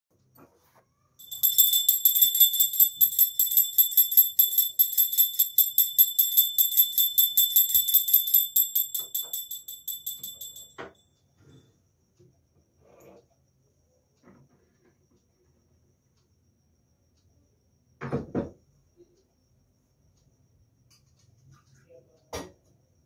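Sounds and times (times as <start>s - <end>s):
hand bell ringing rapidly: 1.2s - 10.7s.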